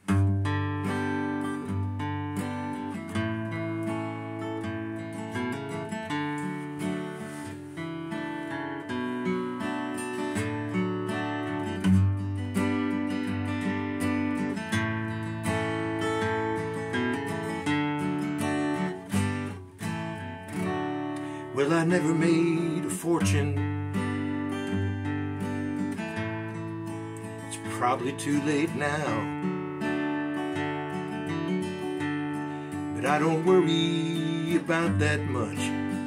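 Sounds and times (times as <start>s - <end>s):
acoustic guitar strummed: 0.0s - 36.0s.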